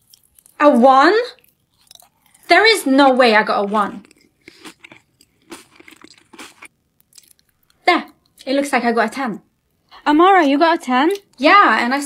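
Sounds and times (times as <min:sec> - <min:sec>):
crunchy candy bites: 0:01.4 - 0:02.5, 0:03.8 - 0:07.6.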